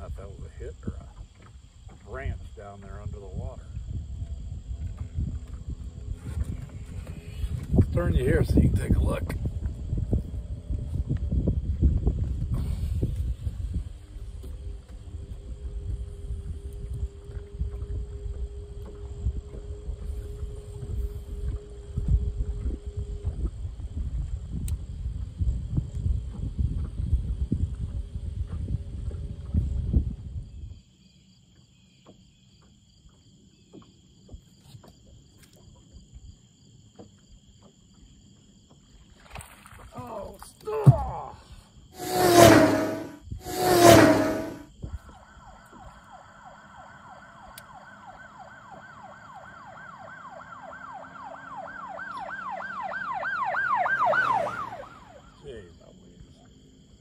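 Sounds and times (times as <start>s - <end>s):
wind rumble on microphone: 0.0s - 30.9s, 41.8s - 45.9s
boat motor hum: 14.0s - 24.4s
loud short sounds: 42.0s - 44.7s
steady whine: 42.0s - 44.7s.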